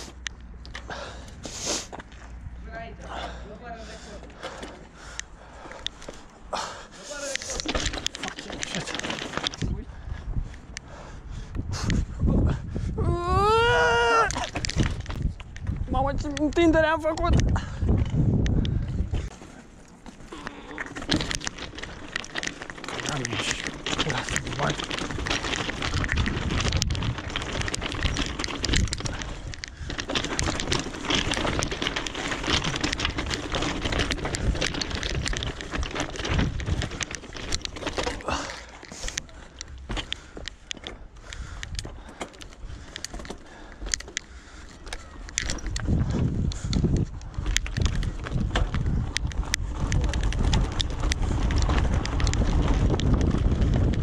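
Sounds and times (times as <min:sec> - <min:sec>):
bike rattling: 0:00.0 - 0:54.0
tyres crunching on gravel: 0:03.9 - 0:09.8, 0:14.2 - 0:54.0
wind buffeting microphone: 0:08.7 - 0:19.4, 0:21.0 - 0:54.0.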